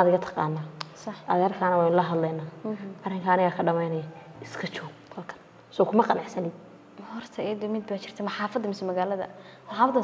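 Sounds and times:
woman speaking softly: 0.4 - 10.0.

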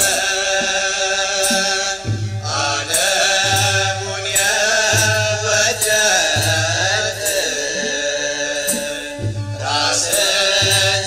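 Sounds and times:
voices chanting held notes: 0.0 - 11.0.

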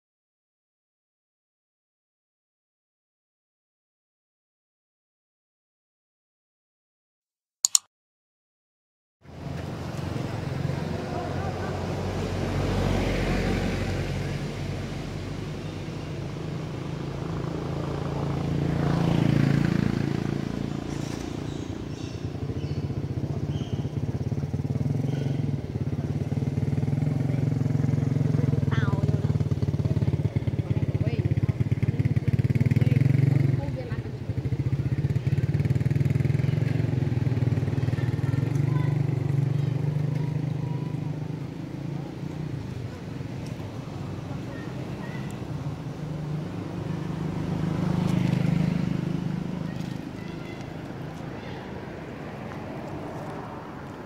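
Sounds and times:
vehicle engine running: 14.6 - 54.0.

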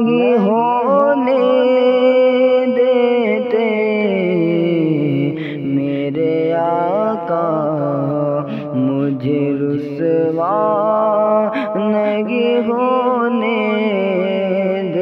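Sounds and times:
man singing with echo: 0.0 - 15.0.

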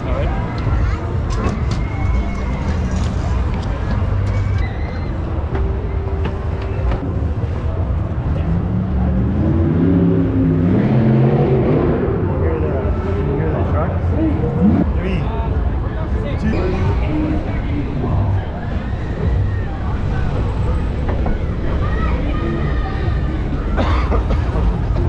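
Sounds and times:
voices talking: 0.0 - 25.0.

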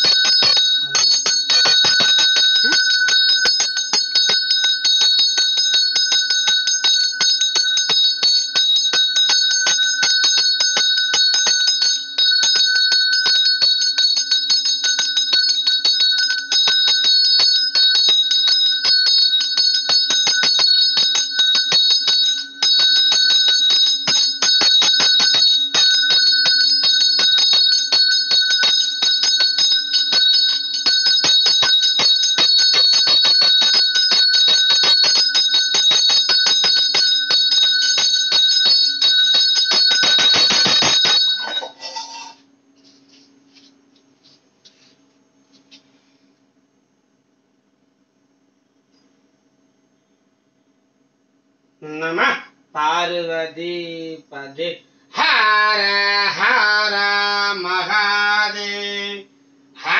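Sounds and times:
temple bell ringing rapidly: 0.0 - 42.4
faint low hum: 0.0 - 59.9.

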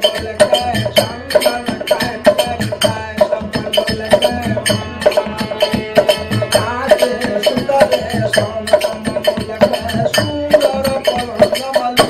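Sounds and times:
hand drum beating: 0.0 - 12.0
harmonium: 0.0 - 12.0
man singing: 0.0 - 12.0.

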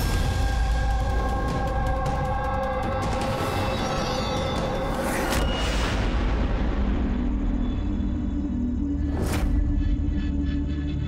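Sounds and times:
low tense music: 0.0 - 11.0.

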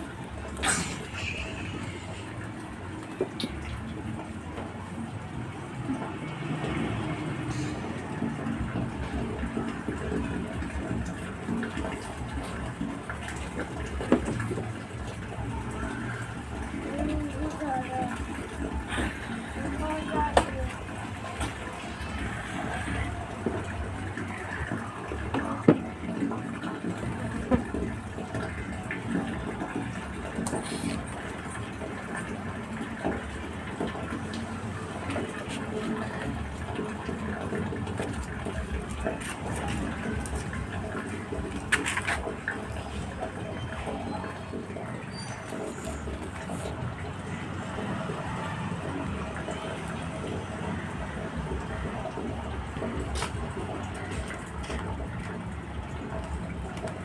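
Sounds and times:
steady background noise: 0.0 - 57.0
voices: 15.3 - 25.7.

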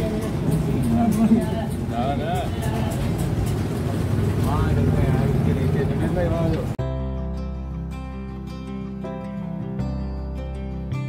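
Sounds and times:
low engine rumble: 0.0 - 6.8
voices: 0.0 - 6.8
soft music with held notes: 6.0 - 11.0.

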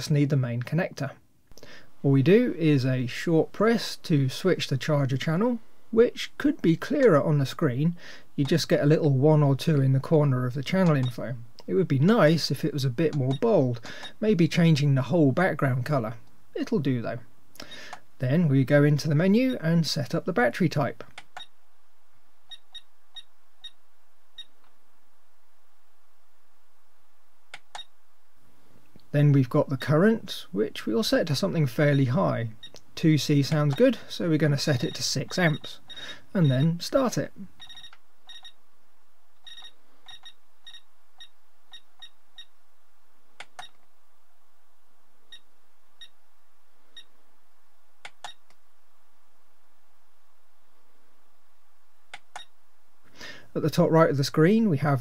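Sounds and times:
clicks: 21.0 - 21.5, 27.5 - 27.9, 32.6 - 32.9, 33.6 - 33.9, 43.4 - 43.9, 48.0 - 48.6, 52.1 - 52.5
battery charger beeps: 22.5 - 23.8, 37.6 - 38.6, 39.4 - 42.5
thumb wheel clicks: 48.0 - 48.5.

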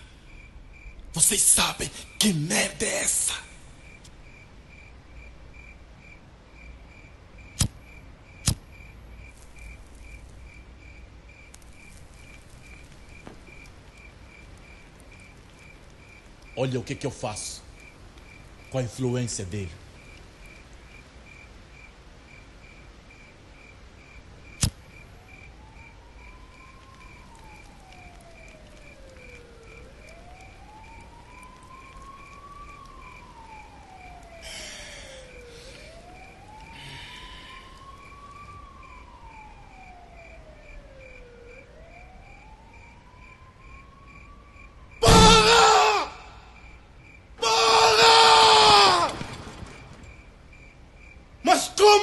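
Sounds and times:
distant siren wailing: 0.0 - 52.0.

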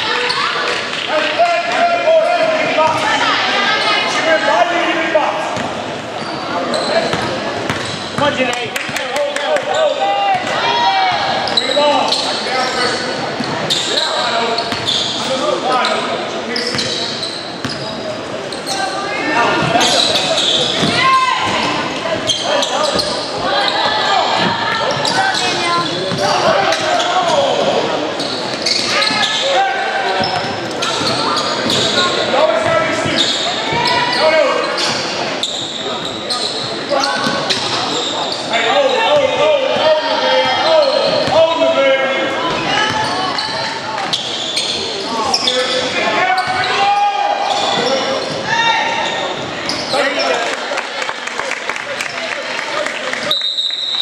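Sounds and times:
voices calling out: 0.0 - 50.6.

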